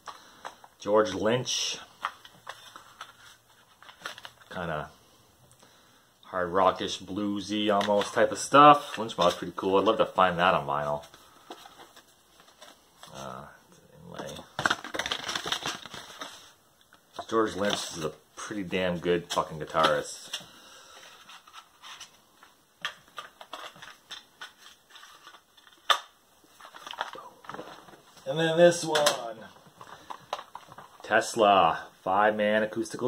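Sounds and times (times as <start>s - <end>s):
paper crackling and rustling: 2.0s - 4.5s, 14.2s - 16.6s, 19.2s - 28.2s.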